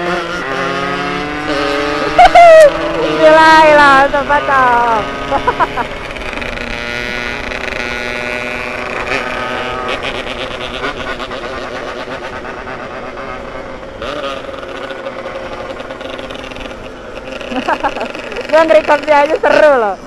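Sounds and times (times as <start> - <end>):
two-stroke motorcycle engine running: 0.0 - 20.0.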